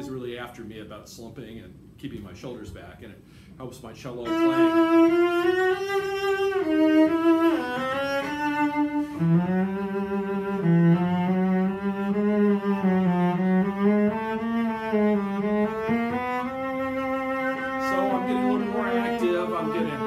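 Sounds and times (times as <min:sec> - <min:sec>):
cello bowed notes with vibrato: 0:04.3 - 0:20.0.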